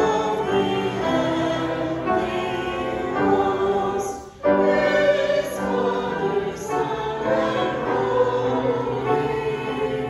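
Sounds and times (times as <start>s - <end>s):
piano accompaniment: 0.0s - 10.0s
woman singing a hymn: 0.0s - 10.0s.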